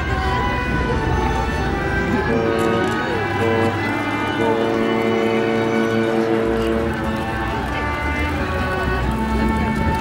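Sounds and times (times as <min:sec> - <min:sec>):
jumble of voices: 0:00.0 - 0:10.0.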